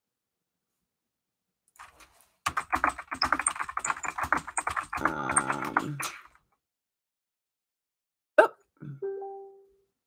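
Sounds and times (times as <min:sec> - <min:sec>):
fast typing on keyboard: 0:01.8 - 0:06.3.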